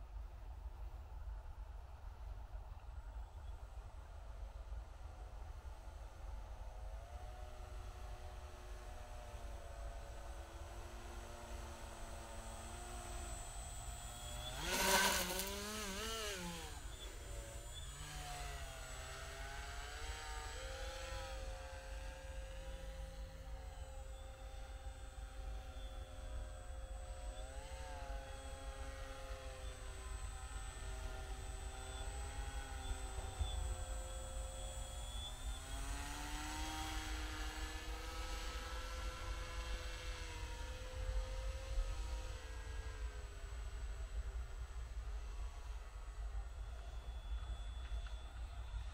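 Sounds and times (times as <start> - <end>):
model aircraft motor whine: 4.9 - 48.9.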